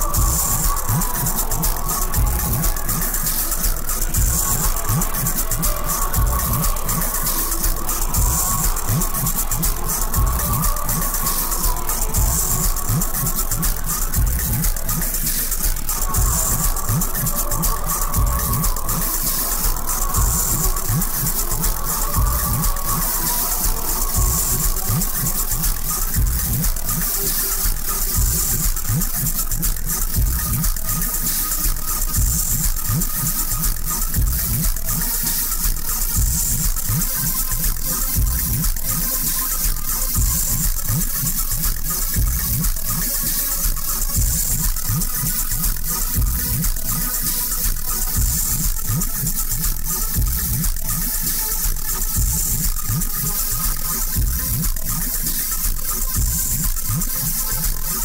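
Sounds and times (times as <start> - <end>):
electronic dance music: 0.0 - 58.0.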